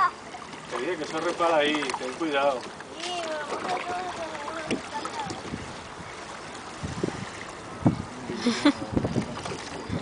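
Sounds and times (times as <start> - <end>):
shallow sea water washing: 0.0 - 10.0
wind buffeting microphone: 3.6 - 10.0.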